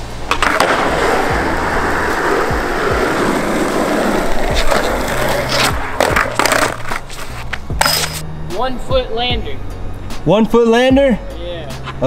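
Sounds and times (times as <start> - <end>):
skateboard wheels rolling: 0.0 - 8.2
background music with bass: 0.0 - 12.0
skateboard deck pop and clacks: 0.3 - 1.0, 5.5 - 8.2.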